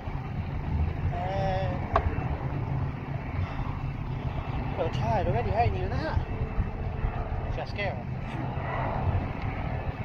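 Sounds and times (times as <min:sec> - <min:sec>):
wind buffeting microphone: 0:00.0 - 0:10.0
man talking: 0:01.1 - 0:01.9, 0:04.8 - 0:06.3, 0:07.5 - 0:08.1.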